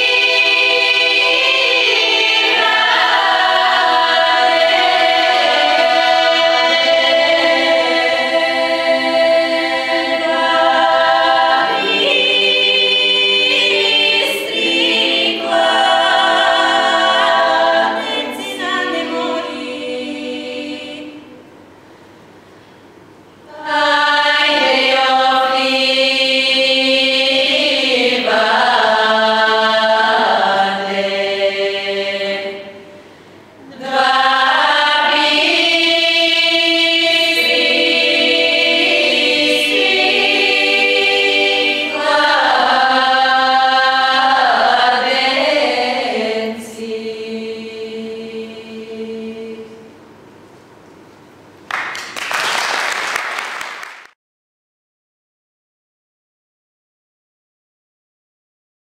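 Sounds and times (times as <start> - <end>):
women's choir singing a cappella: 0.0 - 21.5, 23.5 - 50.1.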